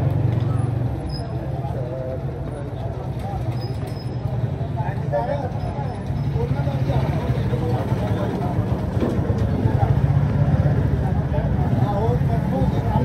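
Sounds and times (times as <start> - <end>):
motorcycle engines running: 0.0 - 13.0
people talking: 0.3 - 13.0.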